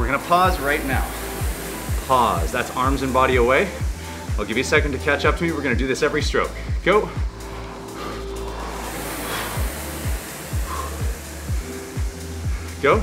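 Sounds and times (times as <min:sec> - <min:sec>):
music with steady beat: 0:00.0 - 0:13.0
rowing machine fan whoosh: 0:00.0 - 0:13.0.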